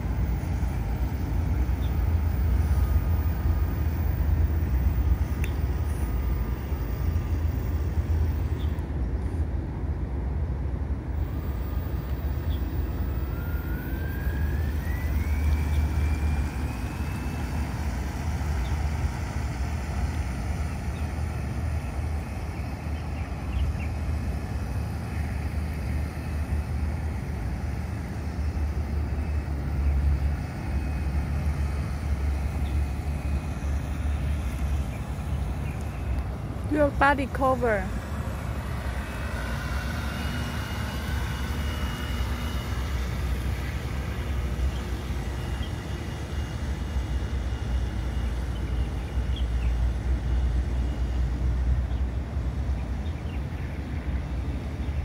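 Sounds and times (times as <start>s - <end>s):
model boat motor whine: 0.0s - 55.0s
steady low rumble: 0.0s - 55.0s.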